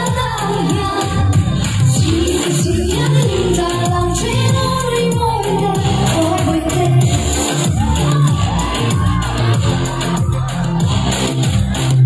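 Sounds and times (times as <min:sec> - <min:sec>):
live pop band playing: 0:00.0 - 0:12.0
crowd cheering: 0:07.4 - 0:12.0.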